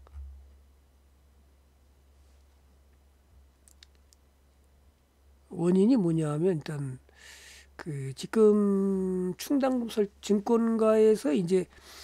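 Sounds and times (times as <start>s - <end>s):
faint low hum: 0.0s - 12.0s
small faint clicks: 2.9s - 5.1s.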